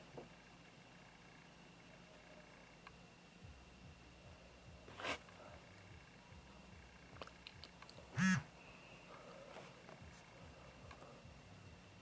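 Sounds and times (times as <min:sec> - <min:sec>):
phone vibration motor buzz: 0:08.0 - 0:09.1.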